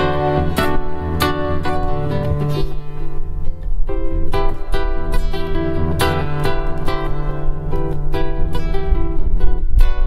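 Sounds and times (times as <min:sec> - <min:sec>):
classical guitar piece: 0:00.0 - 0:10.0.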